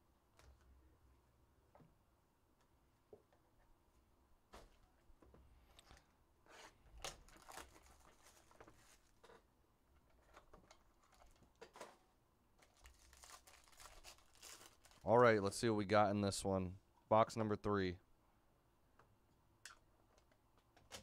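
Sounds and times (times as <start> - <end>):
foil packs crinkling: 7.0 - 9.3, 12.6 - 15.2.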